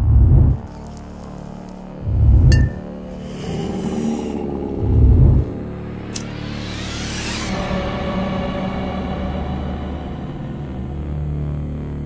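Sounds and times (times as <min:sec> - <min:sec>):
deep bass hits: 0:04.7 - 0:06.2.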